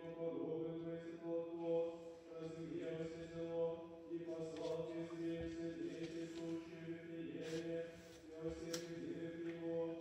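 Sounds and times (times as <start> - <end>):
man chanting in recitative: 0.0 - 10.0.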